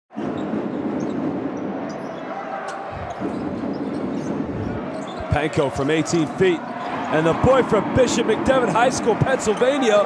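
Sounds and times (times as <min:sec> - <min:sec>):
arena crowd hum: 0:00.2 - 0:10.0.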